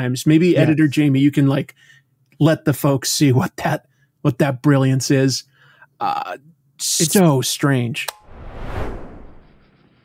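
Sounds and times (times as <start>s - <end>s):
whoosh sound effect: 8.1s - 10.0s.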